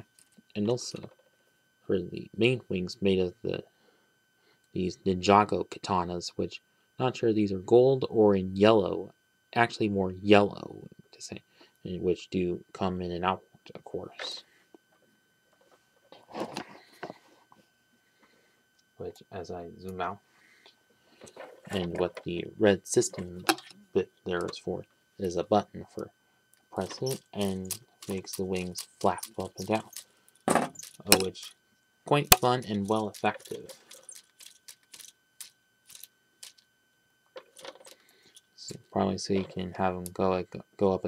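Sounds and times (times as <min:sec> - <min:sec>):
plastic model rustling: 0:26.8 - 0:31.5, 0:32.4 - 0:36.6, 0:37.4 - 0:38.1.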